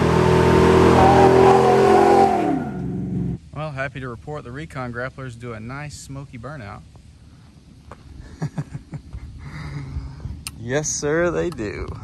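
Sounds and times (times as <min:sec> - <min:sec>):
man chuckling: 0:08.2 - 0:10.2.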